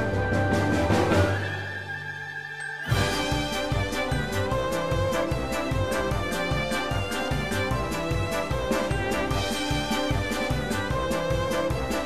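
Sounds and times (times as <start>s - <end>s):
music with steady beat: 2.8s - 12.0s.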